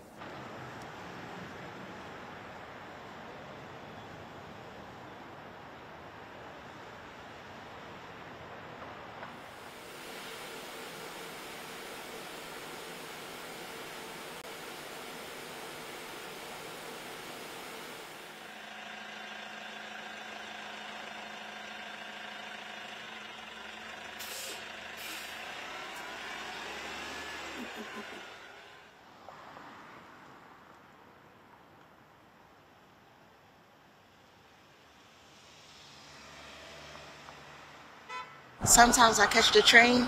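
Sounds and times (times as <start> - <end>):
bus engine hum: 0.0 - 29.2, 34.1 - 40.0
street traffic noise: 0.0 - 40.0
air brake hisses: 24.2 - 25.4.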